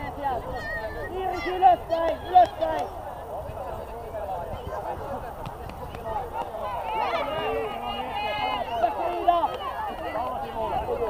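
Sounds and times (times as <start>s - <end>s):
players and coaches shouting: 0.0s - 5.1s, 6.0s - 11.0s.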